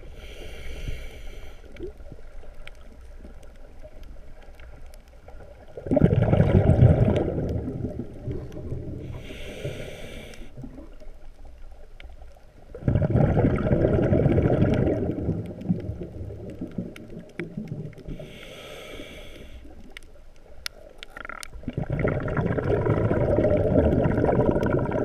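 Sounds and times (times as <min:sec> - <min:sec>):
regulator hissing inhale: 0:00.0 - 0:01.9, 0:09.1 - 0:10.6, 0:18.1 - 0:19.8
faint crackling clicks: 0:00.1 - 0:25.0
rush of exhaled bubbles: 0:05.7 - 0:09.2, 0:12.7 - 0:18.2, 0:21.5 - 0:25.0.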